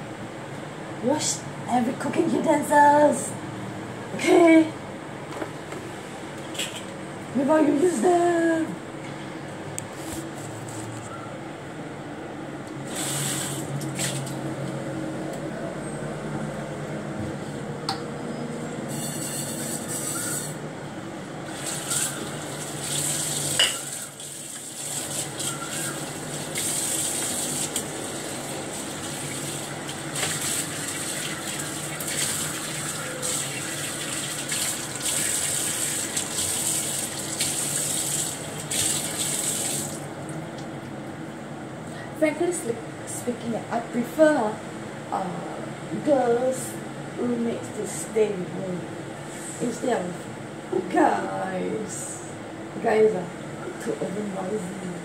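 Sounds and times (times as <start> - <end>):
washing pan and utensils: 21.5 - 27.8, 28.8 - 37.9
tap water running into sink: 21.5 - 40.0.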